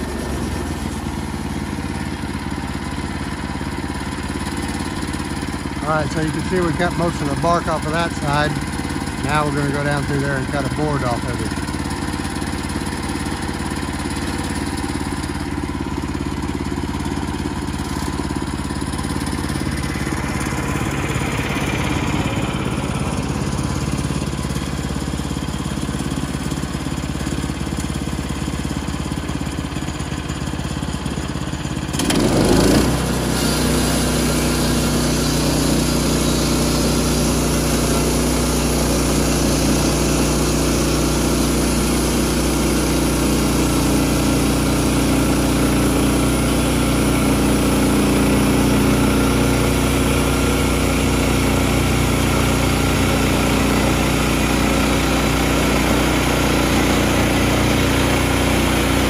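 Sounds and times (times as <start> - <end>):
gas engine running and revving: 0.0 - 59.0.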